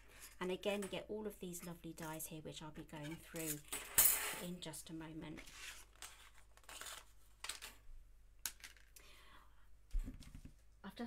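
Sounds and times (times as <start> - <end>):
cardstock rustling and scraping: 5.4 - 7.6.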